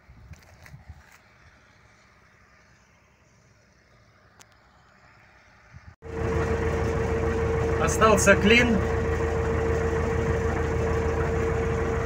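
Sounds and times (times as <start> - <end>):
combine harvester droning: 1.3 - 12.0.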